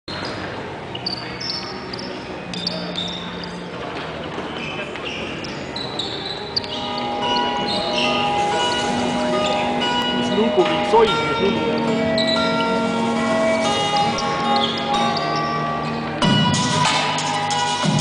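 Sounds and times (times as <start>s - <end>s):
sports shoes squeaking on court: 0.1s - 17.2s
crowd chatter: 0.1s - 18.0s
music with bell-like tones: 5.4s - 18.0s.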